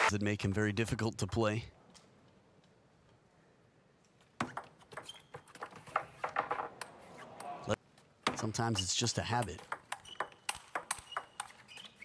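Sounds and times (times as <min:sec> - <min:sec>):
table tennis ball clicking: 0:09.4 - 0:11.7.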